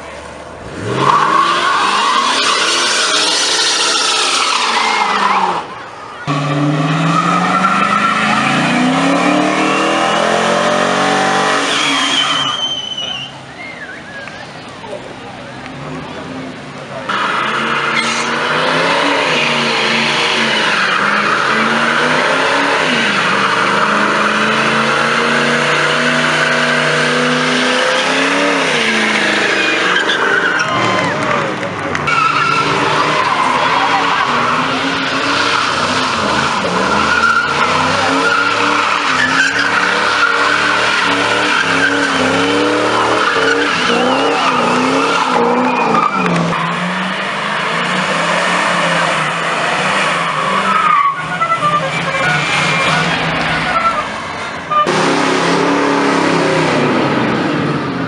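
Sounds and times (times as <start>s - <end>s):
car engines revving hard: 0.0s - 58.0s
tyres screeching on asphalt: 0.0s - 58.0s.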